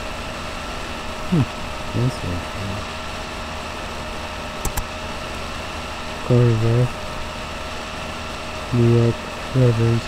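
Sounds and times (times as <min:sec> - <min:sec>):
background hum and hiss: 0:00.0 - 0:10.0
quick clicks: 0:04.6 - 0:04.9.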